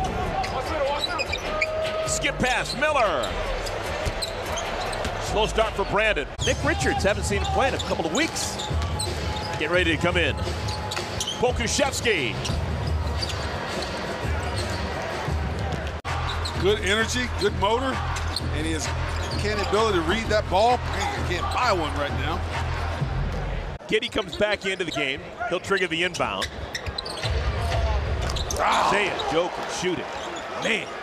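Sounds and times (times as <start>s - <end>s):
crowd noise: 0.0s - 31.0s.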